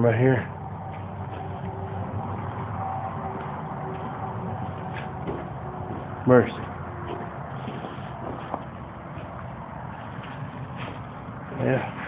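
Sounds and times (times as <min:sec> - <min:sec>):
distant road traffic: 0:00.0 - 0:12.0
faint hum: 0:00.0 - 0:12.0.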